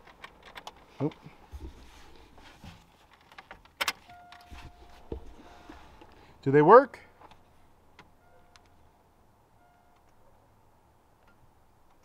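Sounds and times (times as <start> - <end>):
faint warning tone: 4.1 - 6.0, 8.1 - 8.8, 9.5 - 10.1.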